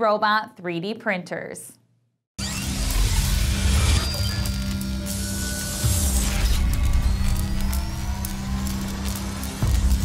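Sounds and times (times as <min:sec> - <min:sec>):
light electric crackles: 0:02.4 - 0:10.0
rising synthetic whir: 0:02.4 - 0:10.0.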